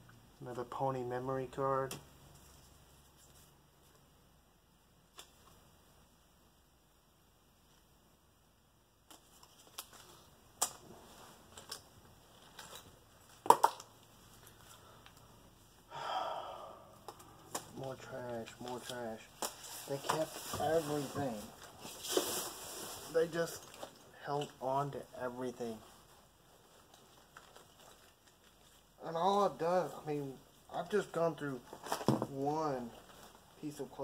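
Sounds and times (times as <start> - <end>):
plastic cards clicking and tapping: 13.4 - 13.9
paper and cloth rustling: 17.7 - 24.0, 25.7 - 29.0.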